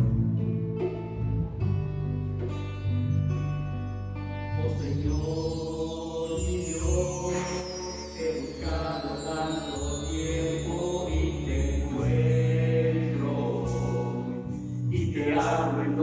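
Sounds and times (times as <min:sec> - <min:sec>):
electric bass: 0:00.0 - 0:05.6, 0:10.2 - 0:16.0
guitar sustained chords: 0:00.0 - 0:16.0
bar chimes shimmer: 0:04.5 - 0:16.0.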